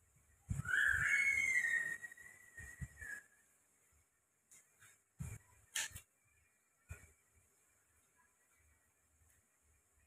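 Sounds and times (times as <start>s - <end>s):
rising whistle tone: 0.5s - 3.4s.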